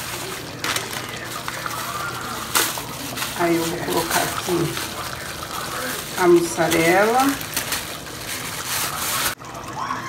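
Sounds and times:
thick sauce splashing: 0.0 - 9.4.

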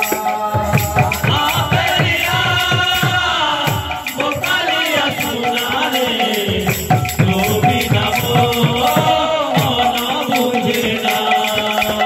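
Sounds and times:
voices singing a chant: 0.0 - 12.0.

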